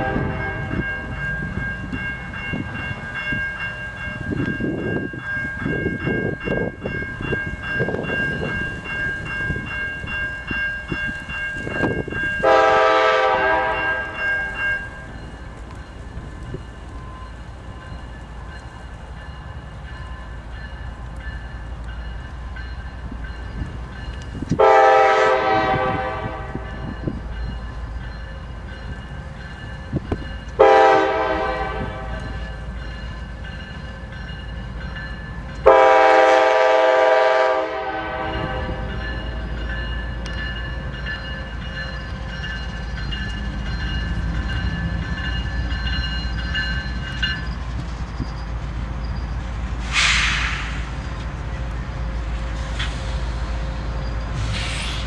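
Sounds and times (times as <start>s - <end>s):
locomotive air horn blasts: 0.0s - 0.8s, 12.4s - 14.6s, 24.6s - 26.8s, 30.6s - 32.4s, 35.6s - 38.9s
crossing bell ringing: 0.0s - 49.8s
locomotive rumble: 0.0s - 55.0s.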